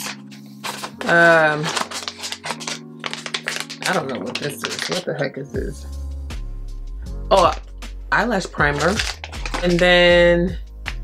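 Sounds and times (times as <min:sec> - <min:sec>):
paper rustling and crackling: 0:00.0 - 0:05.3, 0:08.7 - 0:10.0.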